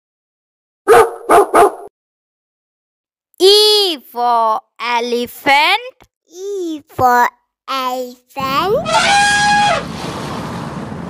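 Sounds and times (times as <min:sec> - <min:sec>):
dog barking: 0:00.9 - 0:01.9.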